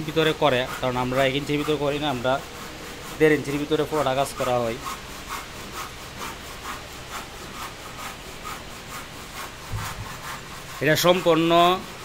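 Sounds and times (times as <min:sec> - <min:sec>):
rubbing on wood: 0:00.0 - 0:12.0
low thump: 0:09.7 - 0:10.1.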